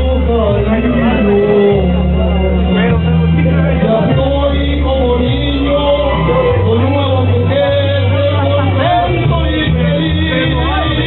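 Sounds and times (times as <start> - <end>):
amplified backing music: 0.0 - 11.0
man singing into microphone: 0.0 - 11.0.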